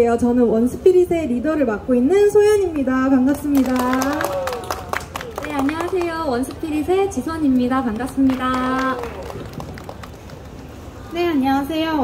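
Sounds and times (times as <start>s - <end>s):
street background noise: 0.0s - 12.0s
scattered hand claps: 3.3s - 10.6s.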